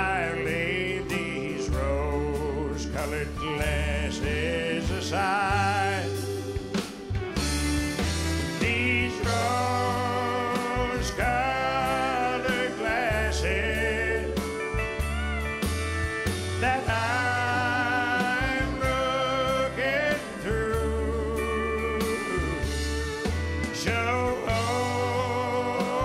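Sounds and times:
man singing with vibrato: 0.0 - 6.8, 8.0 - 15.0, 16.2 - 26.0
country band playing: 0.0 - 26.0
voices singing harmony: 0.0 - 26.0.

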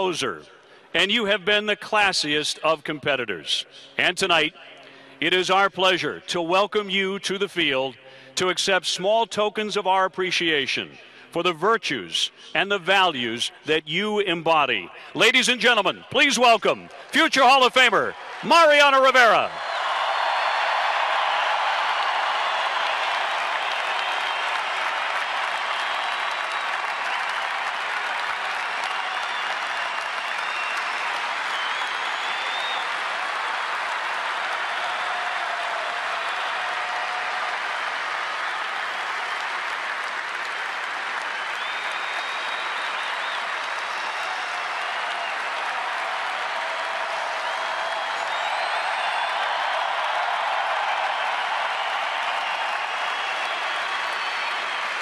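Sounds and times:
crowd applauding: 16.2 - 55.0.

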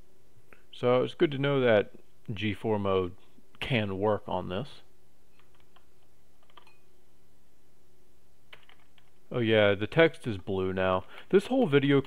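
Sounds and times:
computer keyboard keystrokes: 5.4 - 6.8, 8.5 - 9.1.

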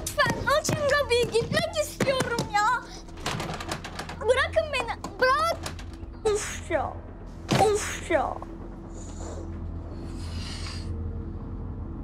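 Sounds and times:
door handle rattling: 0.1 - 6.2.

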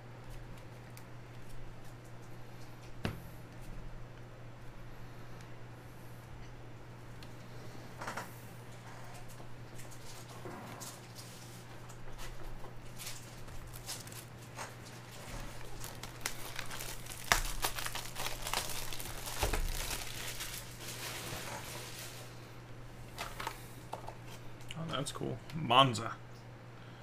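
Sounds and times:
plastic wrapping crinkling and tearing: 12.8 - 22.3
cardboard rustling: 12.9 - 22.2.

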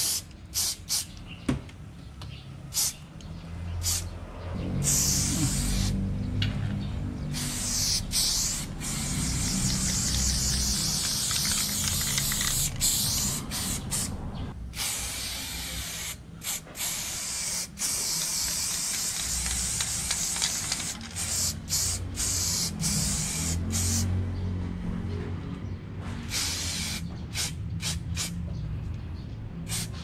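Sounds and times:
spray paint can hissing: 0.0 - 1.2, 2.7 - 3.0, 3.8 - 4.1, 4.8 - 6.0, 7.2 - 14.2, 14.8 - 24.1, 26.3 - 28.4, 29.7 - 30.0.

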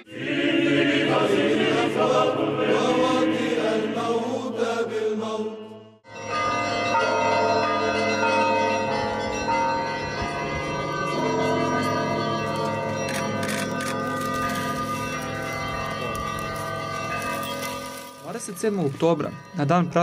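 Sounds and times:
liturgical chanting: 0.0 - 6.0.

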